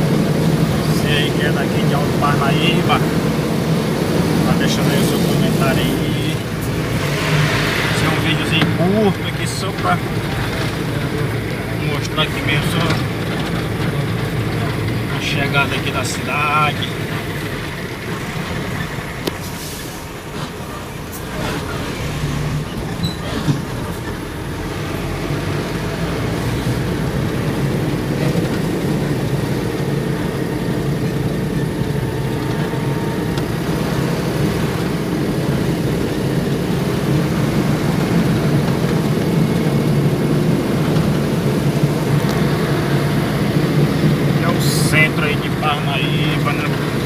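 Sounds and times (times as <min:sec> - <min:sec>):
vehicle engine and tyre noise: 0:00.0 - 0:47.0.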